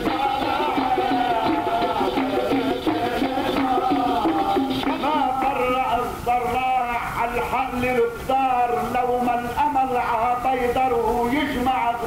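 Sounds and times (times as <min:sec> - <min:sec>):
male voices singing: 0:00.0 - 0:12.0.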